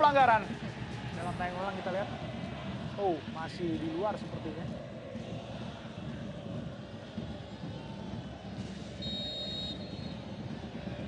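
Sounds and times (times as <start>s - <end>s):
stadium crowd murmur: 0.0s - 11.0s
short high whistle blast: 9.0s - 10.1s.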